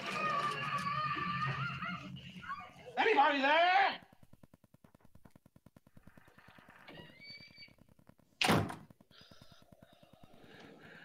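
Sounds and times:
high creak: 0:05.9 - 0:08.2.

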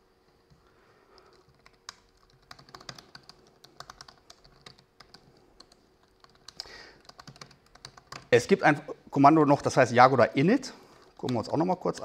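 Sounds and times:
laptop keyboard typing: 0:00.4 - 0:08.4, 0:11.0 - 0:12.0.

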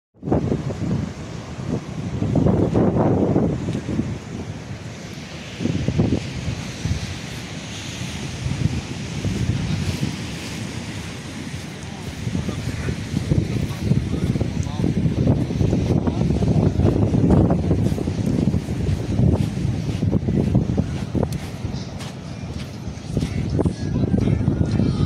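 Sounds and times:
surf breaking on rocks: 0:00.2 - 0:23.7
wind buffeting microphone: 0:00.2 - 0:25.0.

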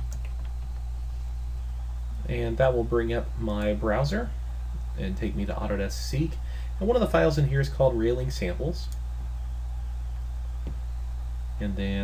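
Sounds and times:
computer keyboard keystrokes: 0:00.0 - 0:00.8
low electrical hum: 0:00.0 - 0:12.0.

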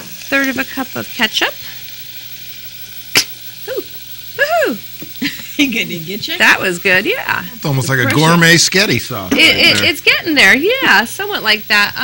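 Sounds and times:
sharp click: 0:03.1 - 0:03.4.

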